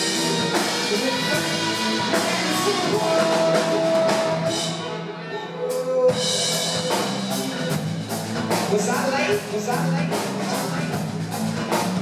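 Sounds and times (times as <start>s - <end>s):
live rock band playing: 0.0s - 12.0s.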